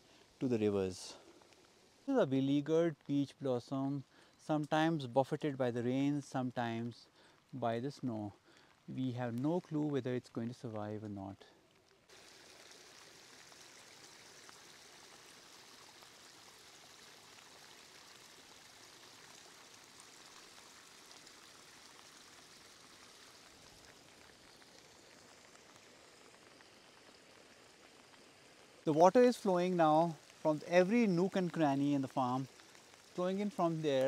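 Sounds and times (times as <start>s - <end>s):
rain falling: 0.0s - 34.0s
water trickling: 6.7s - 34.0s.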